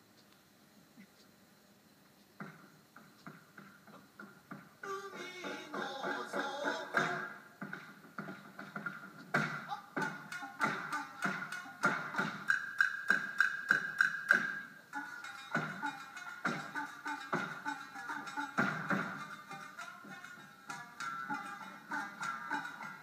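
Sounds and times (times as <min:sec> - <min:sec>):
wooden sandals stamping on stage: 0:02.4 - 0:04.8
person singing: 0:04.8 - 0:07.4, 0:09.7 - 0:12.5, 0:14.9 - 0:23.0
shamisen plucked: 0:10.0 - 0:23.0.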